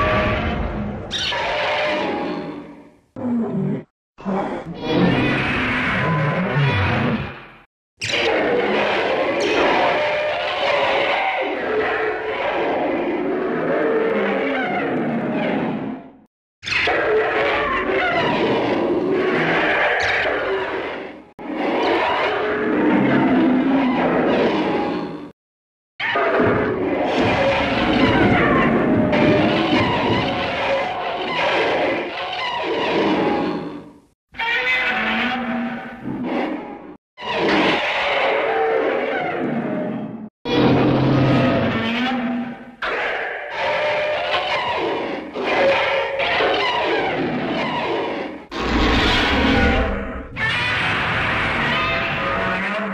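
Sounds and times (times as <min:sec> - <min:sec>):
monster screech: 0:00.0 - 0:02.8, 0:04.7 - 0:14.7, 0:26.0 - 0:33.8, 0:37.2 - 0:39.5, 0:40.5 - 0:52.9.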